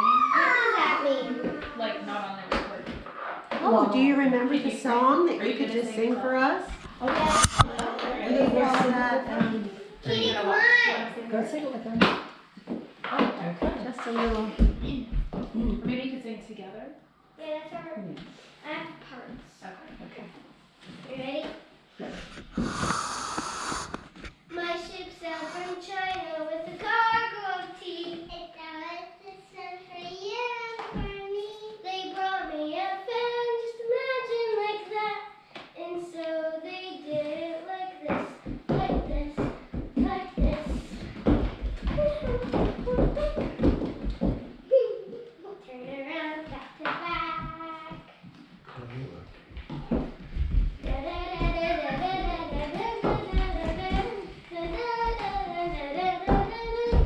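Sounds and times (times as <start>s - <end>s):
brief hiss: 22.2s - 24.4s
girls singing unaccompanied: 50.8s - 57.0s.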